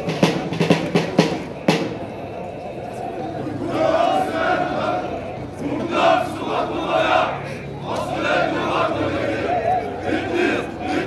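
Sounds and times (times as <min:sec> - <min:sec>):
group of voices shouting: 0:03.5 - 0:11.0.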